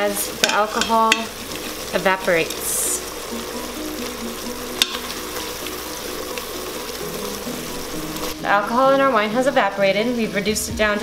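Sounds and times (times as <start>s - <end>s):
soft background music: 0.0s - 11.0s
wine sizzling and bubbling in pot: 0.0s - 11.0s.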